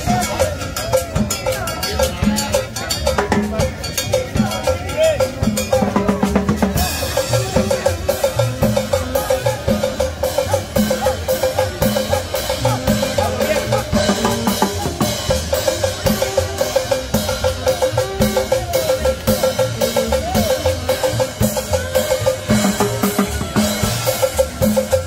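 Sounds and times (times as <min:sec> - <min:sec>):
drum kit and congas beat: 0:00.0 - 0:25.0
live band playing dance music: 0:00.0 - 0:25.0.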